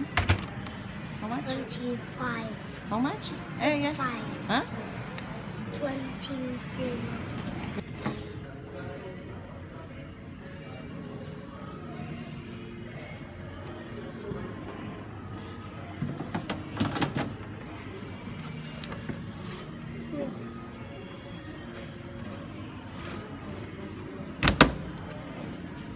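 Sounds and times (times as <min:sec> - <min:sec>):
faint chatter: 0:00.0 - 0:25.9
shop background music: 0:00.0 - 0:25.9.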